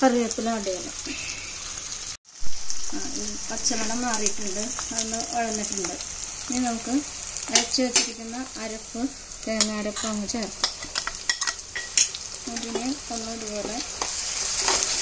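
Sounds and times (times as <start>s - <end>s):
vegetables sizzling in hot oil: 0.0s - 15.0s
steel spoon scraping a pot: 14.0s - 15.0s.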